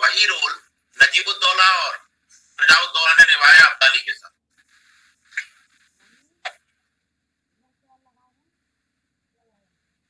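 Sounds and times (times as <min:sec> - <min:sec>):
man speaking over video call: 0:00.0 - 0:04.4.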